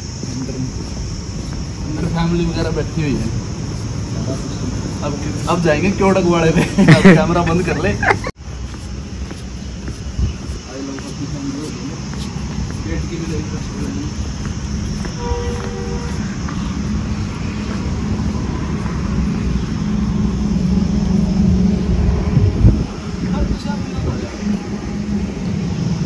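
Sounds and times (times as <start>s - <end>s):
low outdoor rumble: 0.0s - 26.0s.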